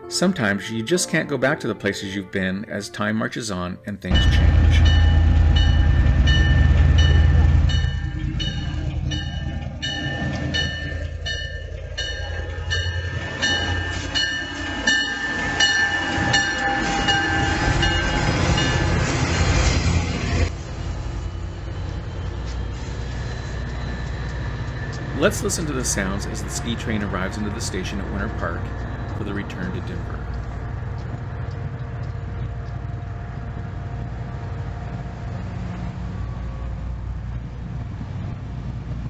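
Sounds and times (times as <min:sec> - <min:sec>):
locomotive bell ringing: 0:04.1 - 0:19.6, 0:21.2 - 0:36.8
diesel locomotive engines rumbling: 0:04.1 - 0:39.0
thin steady squeal: 0:21.2 - 0:27.3.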